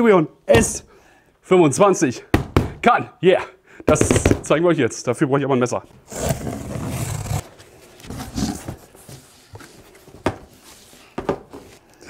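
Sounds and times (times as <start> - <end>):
cardboard scraping and rustling: 6.1 - 11.8.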